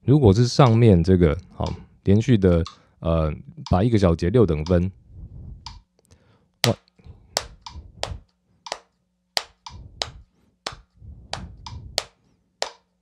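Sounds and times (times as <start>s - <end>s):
hand claps in steady rhythm: 7.4s - 12.8s.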